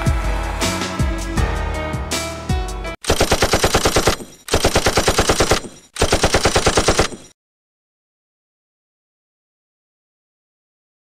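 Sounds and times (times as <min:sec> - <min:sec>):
automatic rifle bursts: 0:03.0 - 0:07.3.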